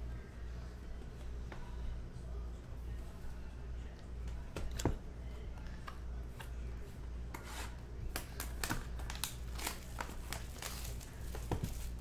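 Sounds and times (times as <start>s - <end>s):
plastic wrapping crinkling and tearing: 8.1s - 12.0s.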